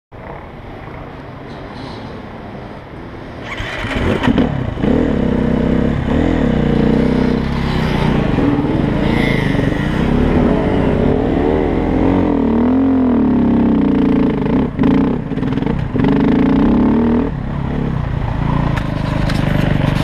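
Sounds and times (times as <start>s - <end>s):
dirt bike engine revving: 3.5s - 17.3s.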